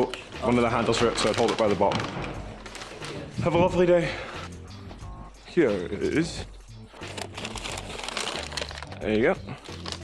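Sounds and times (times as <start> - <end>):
paper and foil bags crinkling: 0.0 - 3.8, 6.9 - 10.0.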